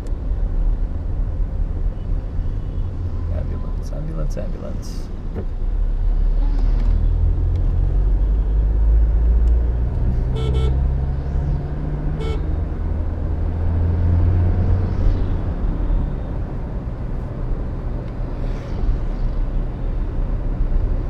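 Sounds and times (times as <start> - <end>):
car engine and road rumble: 0.0 - 21.0
short horn toots: 10.3 - 10.8.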